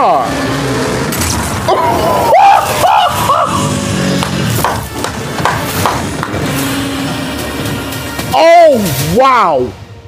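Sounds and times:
trailer music: 0.2 - 10.0.

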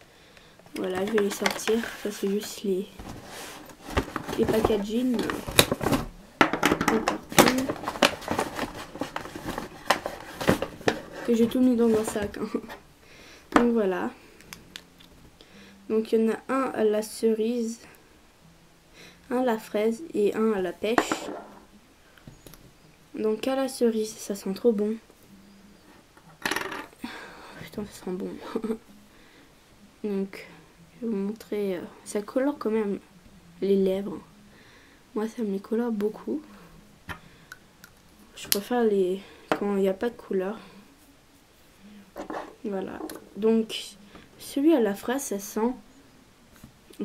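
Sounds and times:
packaging rustling and crinkling: 0.8 - 6.2, 7.0 - 12.4.

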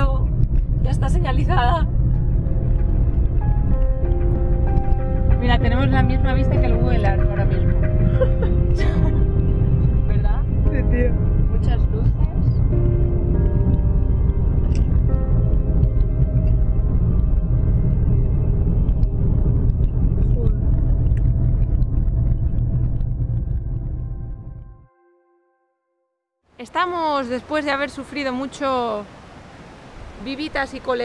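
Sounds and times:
music playing: 0.0 - 21.4
car road and engine rumble: 0.0 - 24.8.

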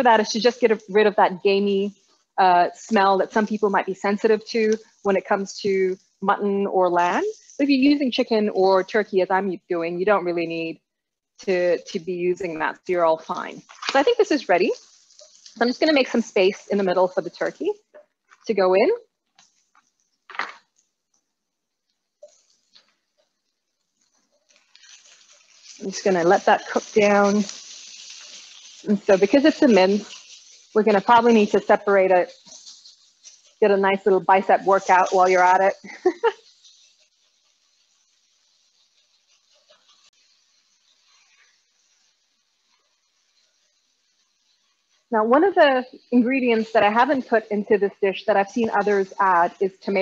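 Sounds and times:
meat sizzling in a hot pan: 0.0 - 50.0.

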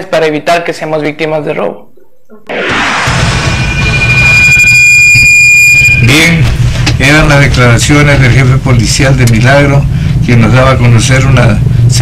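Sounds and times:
high-pitched electronic tone: 2.5 - 6.4
low hum: 2.5 - 9.1.

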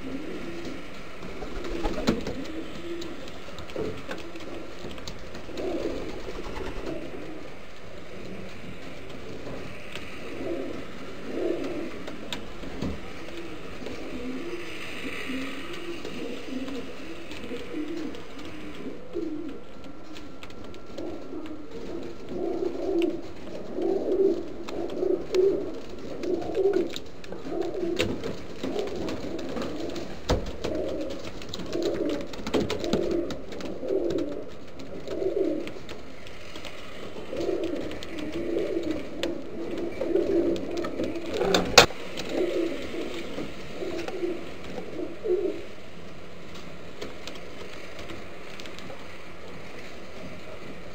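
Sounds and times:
pigeons cooing: 0.0 - 48.8.

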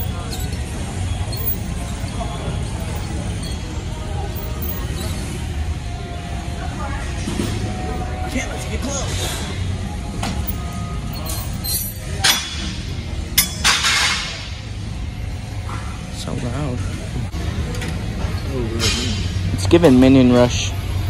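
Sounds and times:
gym background music: 0.0 - 21.0.

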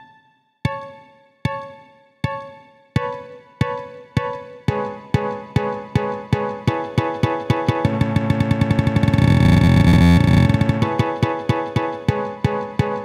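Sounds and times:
electronic pitched notes: 7.7 - 11.4.

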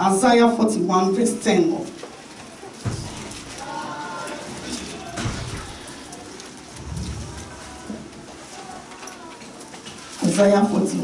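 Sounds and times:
dull low thumps: 6.7 - 8.4.

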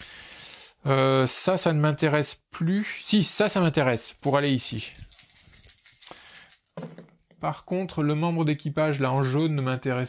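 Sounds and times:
plastic dice rattling and rolling: 4.9 - 7.4.

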